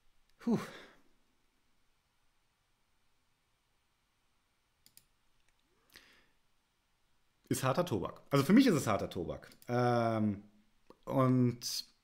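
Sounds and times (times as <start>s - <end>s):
man sighing: 0.4s - 1.2s.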